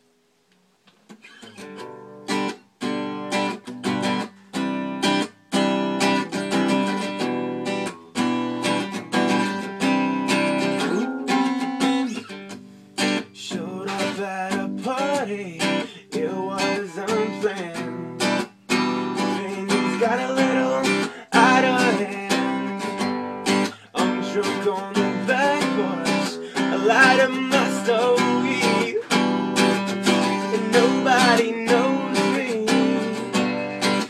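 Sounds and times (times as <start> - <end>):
acoustic guitar strumming: 1.2 - 34.0.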